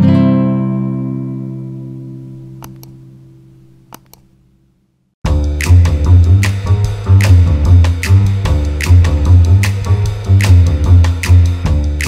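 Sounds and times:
guitar chord ringing: 0:00.0 - 0:03.5.

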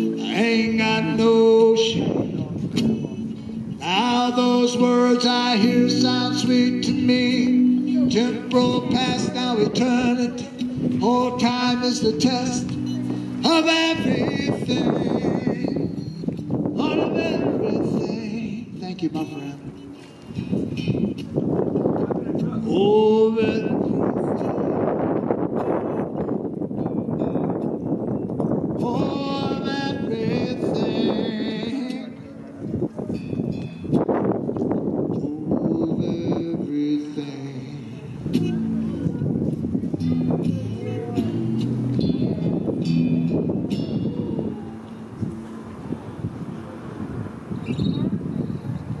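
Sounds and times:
electric guitar strumming: 0:00.0 - 0:48.2
low street rumble: 0:00.0 - 0:49.0
wind on microphone: 0:00.0 - 0:49.0
short high chirp: 0:47.6 - 0:48.1.

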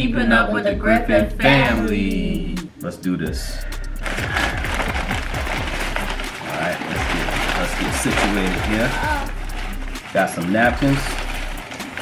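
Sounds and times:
paper bags rustling: 0:04.0 - 0:12.0.

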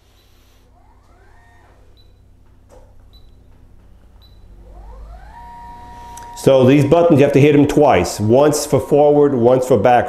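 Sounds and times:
actuator motor whine: 0:00.0 - 0:10.0.

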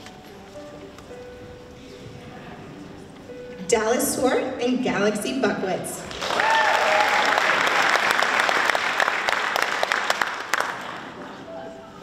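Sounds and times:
audience applauding: 0:06.1 - 0:11.2
audience cheer: 0:06.2 - 0:08.0.

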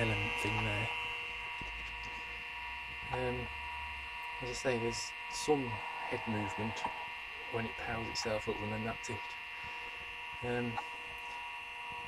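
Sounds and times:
computer hard drive whine and hum: 0:00.0 - 0:12.0.

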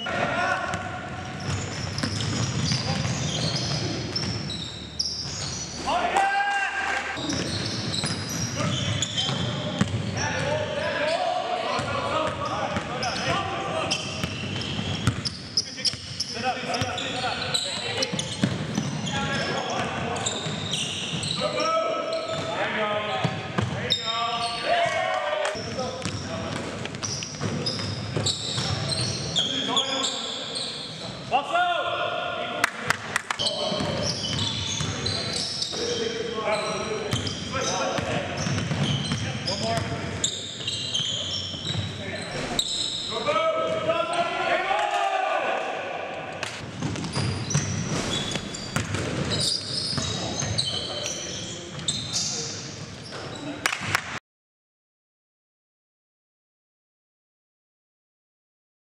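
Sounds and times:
players' voices echoing: 0:00.0 - 0:04.4, 0:05.7 - 0:46.7
sneakers squeaking: 0:00.0 - 0:06.2, 0:07.2 - 0:31.3, 0:33.3 - 0:44.4, 0:46.6 - 0:54.0
basketball bouncing: 0:01.4 - 0:03.2, 0:09.2 - 0:10.1, 0:14.2 - 0:15.3, 0:38.0 - 0:39.2, 0:46.6 - 0:49.4.

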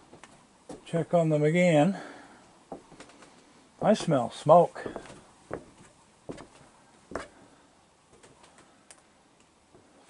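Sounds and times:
soft footsteps on wooden deck: 0:00.0 - 0:01.1, 0:02.0 - 0:08.8, 0:09.7 - 0:10.0.

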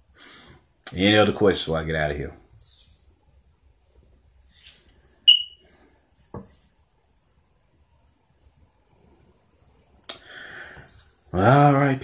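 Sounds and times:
short high electronic beep: 0:05.3 - 0:05.6.

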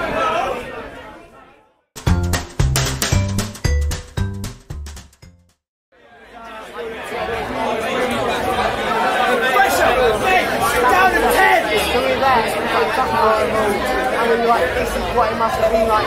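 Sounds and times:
group of voices talking and shouting: 0:00.0 - 0:01.8, 0:06.0 - 0:16.0.

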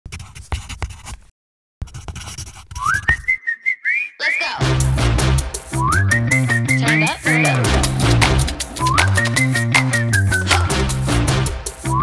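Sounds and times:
person whistling a tune: 0:02.8 - 0:04.5, 0:05.7 - 0:10.8
scratchy crackling noises: 0:07.1 - 0:11.1.

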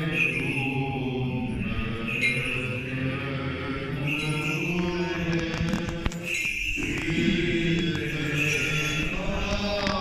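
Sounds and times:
liturgical chant: 0:00.0 - 0:10.0.

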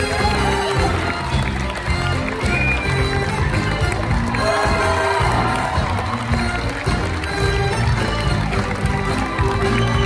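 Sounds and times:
audience crowd noise: 0:00.0 - 0:10.0
theatre band playing upbeat music: 0:00.0 - 0:10.0.

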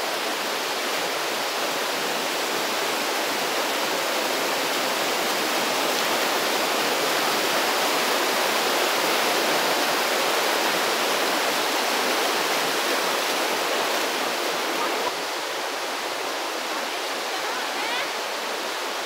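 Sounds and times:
stream rushing over rocks: 0:00.0 - 0:19.0.

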